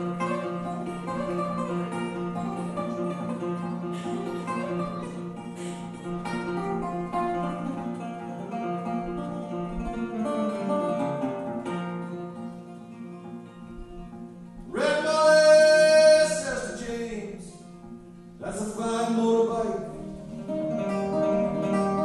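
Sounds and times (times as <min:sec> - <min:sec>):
acoustic guitar picking: 0:00.0 - 0:22.0.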